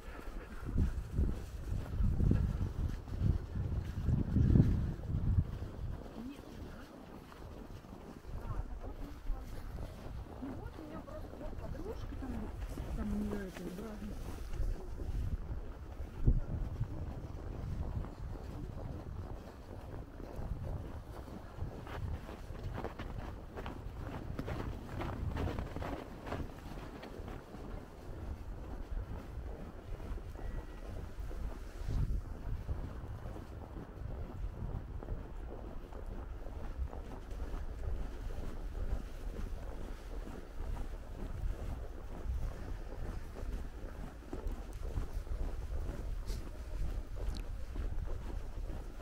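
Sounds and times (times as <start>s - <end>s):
footsteps crunching on snow: 0.0s - 49.0s
wind buffeting microphone: 0.0s - 49.0s.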